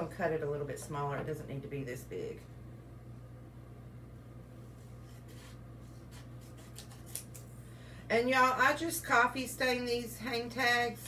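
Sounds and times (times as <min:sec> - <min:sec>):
low electrical hum: 0:00.0 - 0:11.0
paper rustling: 0:04.8 - 0:07.5
scissors snipping paper: 0:06.1 - 0:07.5.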